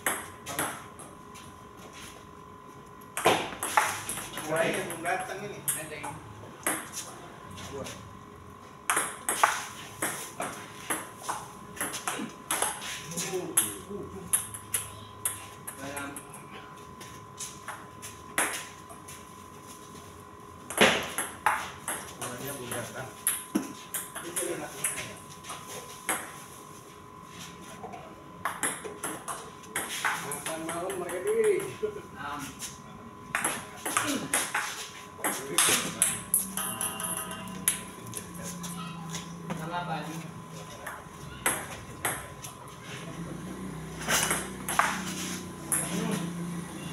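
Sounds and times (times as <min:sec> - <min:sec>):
table tennis ball hits: 0:03.1 - 0:06.9, 0:08.9 - 0:12.8, 0:20.7 - 0:25.1, 0:28.4 - 0:31.7, 0:33.3 - 0:37.9, 0:40.8 - 0:42.3, 0:44.0 - 0:46.1.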